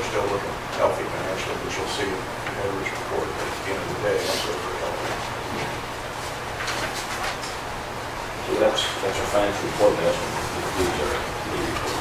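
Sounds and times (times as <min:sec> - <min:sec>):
man speaking softly: 0:00.0 - 0:05.1.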